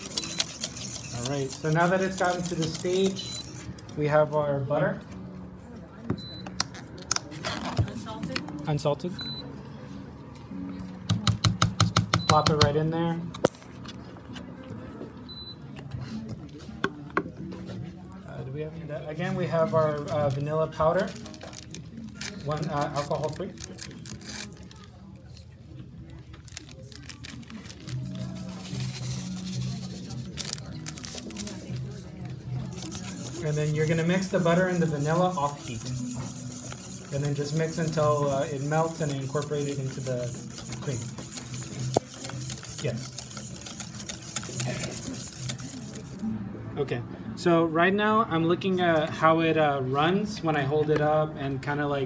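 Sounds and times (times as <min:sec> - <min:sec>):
paper packet crinkling and tearing: 0:00.0 - 0:03.6, 0:21.0 - 0:25.0, 0:26.3 - 0:46.2
low background music: 0:00.0 - 0:52.0
murmur of voices: 0:00.0 - 0:52.0.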